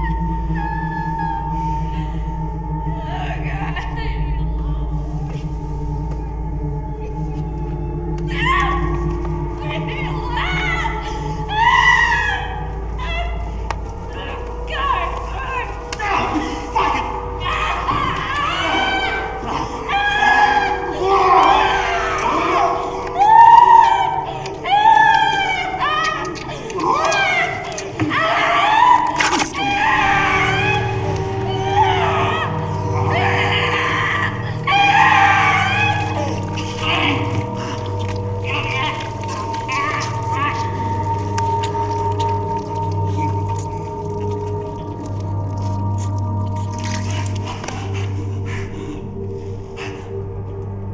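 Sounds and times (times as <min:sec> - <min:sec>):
wavering vocal cries: 0:00.0 - 0:50.4
steady low drone: 0:00.0 - 0:50.9
high wailing scream: 0:16.0 - 0:43.9.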